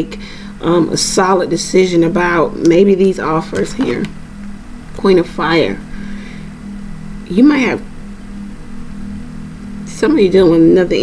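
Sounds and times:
low room hum with hiss: 0.0 - 11.0.

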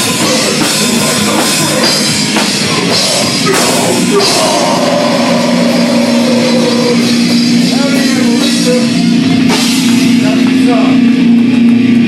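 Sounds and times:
distorted electric guitars and bass: 0.0 - 12.0.

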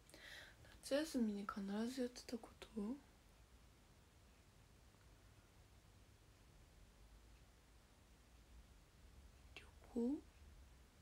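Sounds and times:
faint low hum: 0.0 - 11.0
young woman speaking: 0.8 - 3.1, 9.6 - 10.2.

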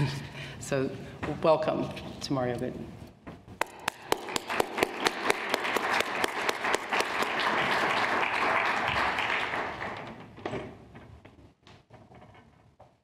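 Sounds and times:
audience applauding: 3.6 - 10.2.

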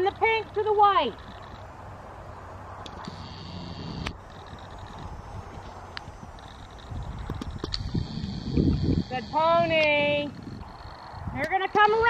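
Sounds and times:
outdoor background noise: 0.0 - 12.0
hooves thudding on grass: 2.8 - 12.0.

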